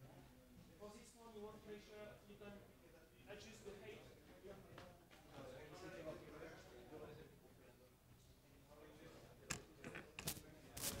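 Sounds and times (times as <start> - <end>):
handling rustles and scrapes: 10.2 - 11.0.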